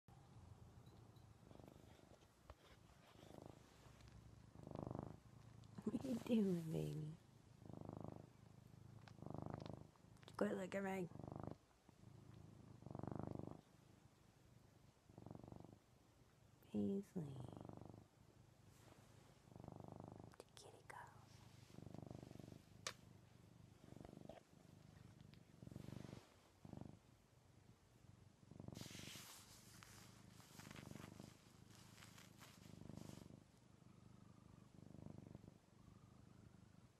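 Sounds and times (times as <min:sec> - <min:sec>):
cat purring: 0:00.1 - 0:36.9.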